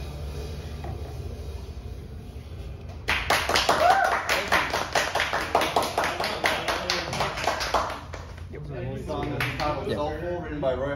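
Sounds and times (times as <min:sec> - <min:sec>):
audience clapping: 0:02.9 - 0:08.5, 0:09.1 - 0:09.8.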